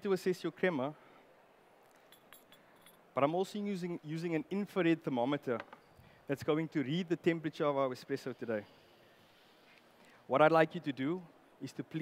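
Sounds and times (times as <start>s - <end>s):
clinks of ceramic cups and saucers: 2.0s - 3.0s.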